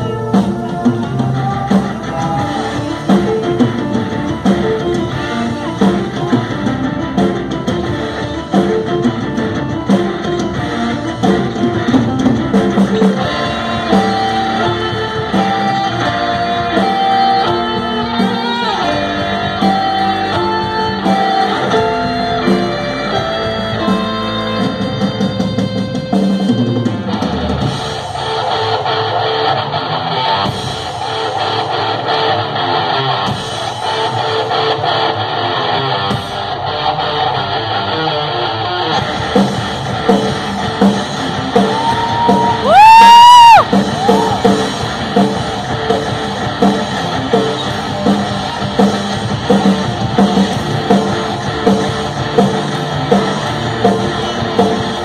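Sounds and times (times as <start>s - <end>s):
instrumental metal band playing: 0.0s - 55.0s.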